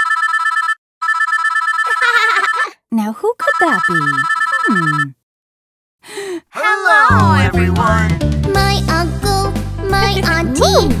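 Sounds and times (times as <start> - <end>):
mobile phone ringing: 0.0 - 2.8, 3.5 - 5.2
short vocal sound: 6.5 - 8.2.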